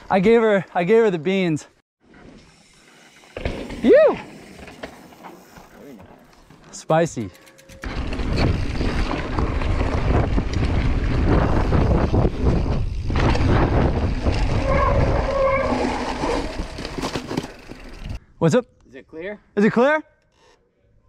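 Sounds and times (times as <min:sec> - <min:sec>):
wind buffeting microphone: 0:08.1 - 0:15.6.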